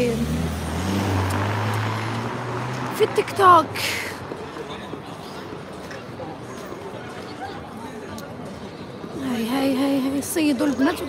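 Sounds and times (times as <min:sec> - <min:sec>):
vehicle engine humming: 0:00.0 - 0:05.6
street traffic noise: 0:00.0 - 0:11.0.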